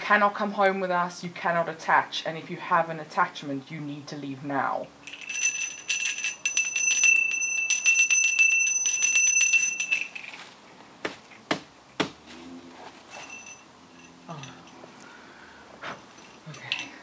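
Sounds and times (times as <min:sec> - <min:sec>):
handbell ringing: 0:05.0 - 0:10.2, 0:13.1 - 0:14.8.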